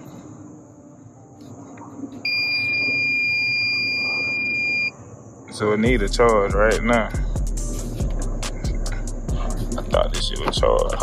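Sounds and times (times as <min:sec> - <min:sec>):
steady electronic beep: 0:02.2 - 0:05.0.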